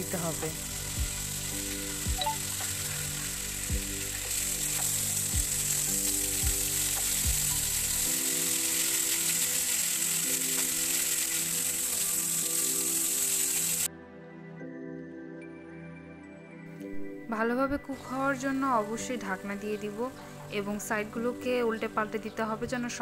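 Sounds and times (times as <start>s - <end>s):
skewers sizzling in a frying pan: 0.0s - 13.9s.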